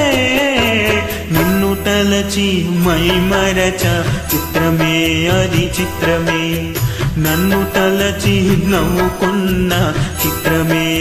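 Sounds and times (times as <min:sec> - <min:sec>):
karaoke backing track: 0:00.0 - 0:11.0
man singing wordless notes: 0:00.0 - 0:11.0.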